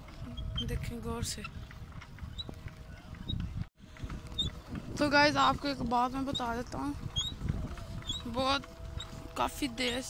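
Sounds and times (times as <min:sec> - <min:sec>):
bicycle road rumble: 0:00.0 - 0:10.0
wind on microphone: 0:00.0 - 0:10.0
pedal chirps and clicks: 0:06.3 - 0:09.2.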